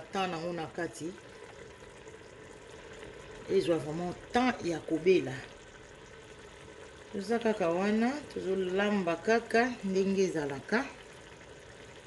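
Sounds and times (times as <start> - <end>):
sauce bubbling and sizzling in pot: 0.0 - 12.0.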